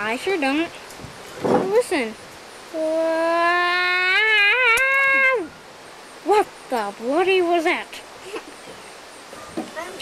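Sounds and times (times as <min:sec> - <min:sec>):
voice making eerie oooo noise: 0:02.8 - 0:05.5.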